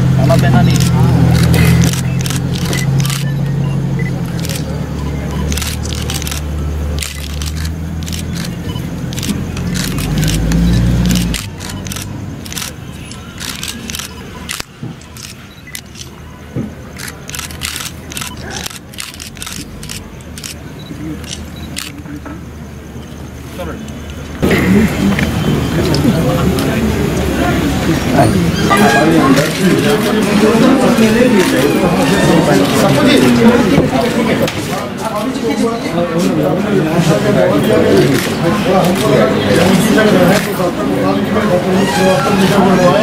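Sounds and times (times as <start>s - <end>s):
faint murmuring voices: 0.0s - 43.0s
camera shutters clicking: 0.6s - 3.4s, 4.2s - 4.7s, 5.3s - 16.2s, 16.9s - 20.6s, 29.3s - 31.7s.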